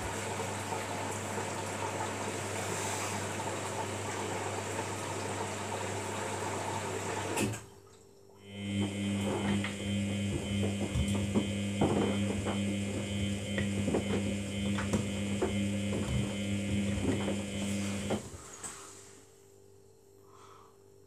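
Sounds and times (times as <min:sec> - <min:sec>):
water sloshing in washing machine: 0:00.0 - 0:18.9
washing machine motor hum: 0:00.0 - 0:19.1.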